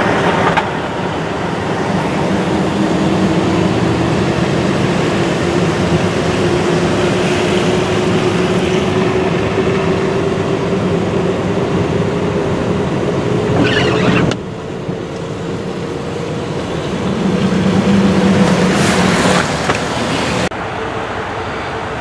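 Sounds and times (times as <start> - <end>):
car engine and tyres on snow: 0.0 - 22.0.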